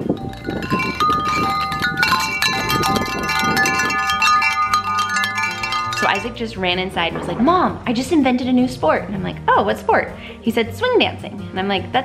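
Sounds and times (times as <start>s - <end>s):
metal wind chimes ringing: 0.0s - 8.0s.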